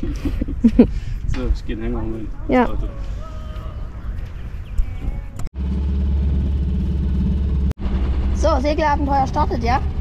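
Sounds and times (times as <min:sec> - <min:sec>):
engine running with low hum: 0:04.9 - 0:10.0.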